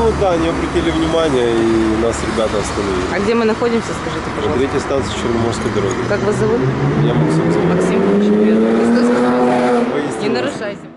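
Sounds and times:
car accelerating past: 0.0s - 10.9s.

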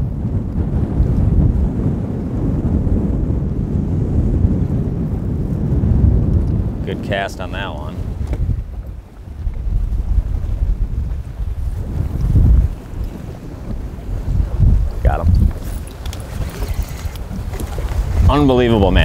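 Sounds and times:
wind gusting across microphone: 0.0s - 19.0s
waves lapping against boat: 5.1s - 19.0s.

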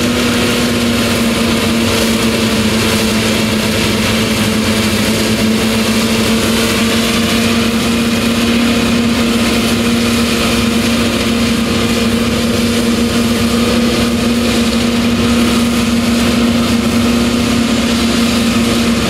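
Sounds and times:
tractor mower drone: 0.0s - 19.0s.

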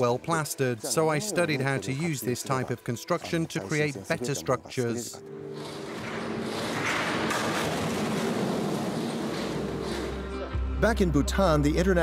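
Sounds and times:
brick wall collapsing: 5.6s - 10.3s.

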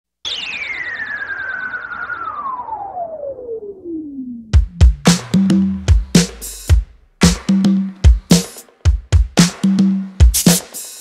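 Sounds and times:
synthesizer tone sweeping down: 0.2s - 5.9s
high warble: 0.2s - 7.7s.

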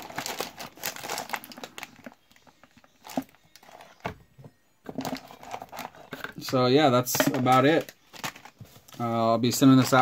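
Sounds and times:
plastic bag crinkling: 0.0s - 4.0s.

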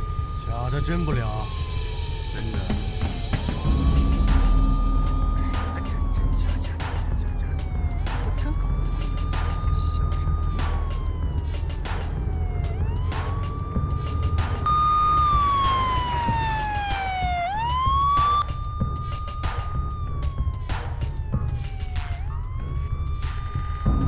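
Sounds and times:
police siren wailing: 0.0s - 24.0s
low rumble: 1.4s - 23.1s.

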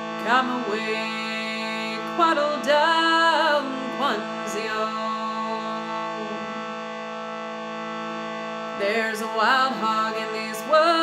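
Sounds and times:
shruti box drone: 0.0s - 11.0s.

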